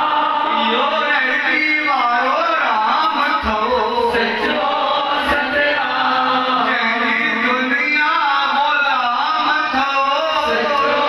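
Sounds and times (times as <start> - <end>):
man chanting a hymn: 0.0 - 4.4, 5.3 - 11.0.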